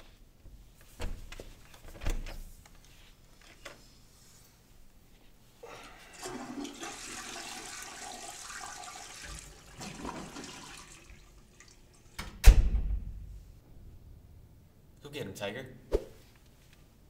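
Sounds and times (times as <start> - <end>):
toilet flushing: 6.0 - 12.2
loud thump: 12.4 - 13.4.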